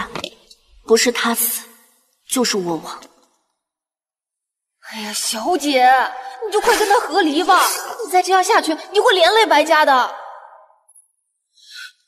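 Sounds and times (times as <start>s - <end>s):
echoing speech: 4.9s - 10.7s.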